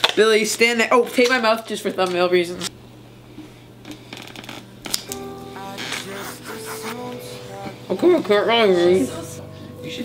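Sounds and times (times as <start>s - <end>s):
duct tape crackling: 3.8s - 7.2s
background music with held notes: 4.9s - 10.0s.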